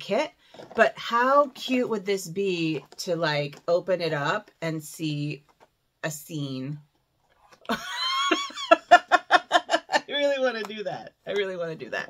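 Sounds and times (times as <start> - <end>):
woman laughing: 7.7 - 10.2.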